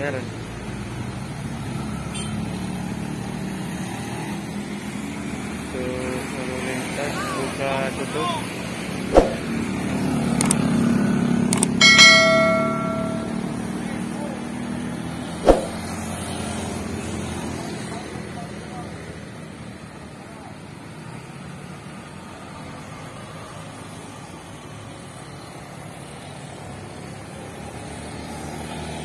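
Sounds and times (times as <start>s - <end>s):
motorcycles passing: 0.0s - 29.0s
sharp knocks: 9.1s - 9.5s, 11.8s - 13.4s, 15.4s - 15.8s.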